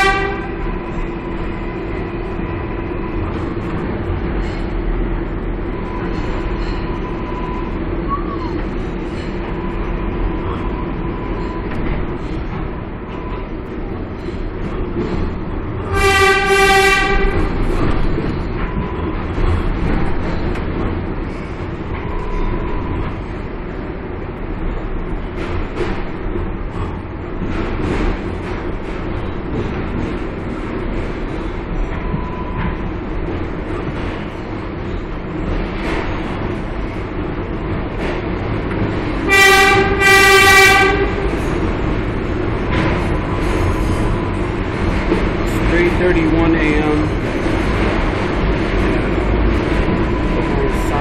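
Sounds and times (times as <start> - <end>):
train horn toots: 0.0 - 0.9, 15.8 - 17.8, 39.2 - 41.4
subway train rumbling: 0.0 - 51.0.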